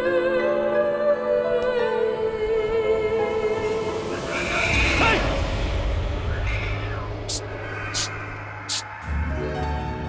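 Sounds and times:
sharp hissing bursts: 6.4 - 9.0.

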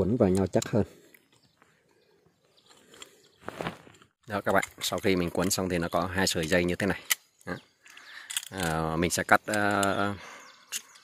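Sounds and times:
wire twisted with pliers: 3.8 - 10.0.

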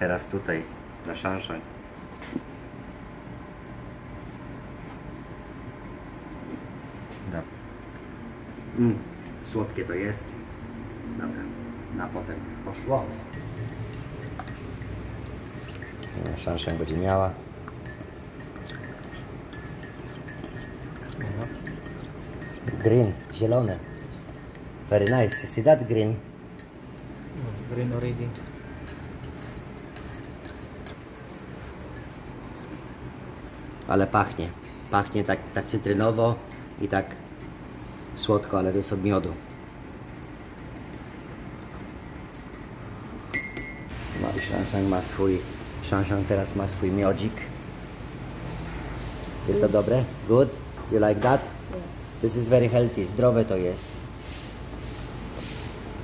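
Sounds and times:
low room hum: 0.0 - 56.0
teaspoon clinking in ceramic mug: 13.3 - 17.0, 17.6 - 25.6, 34.8 - 44.6.

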